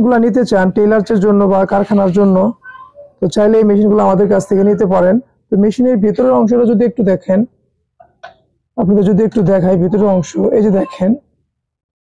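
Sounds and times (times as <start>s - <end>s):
person talking: 0.0s - 7.5s, 8.2s - 11.2s.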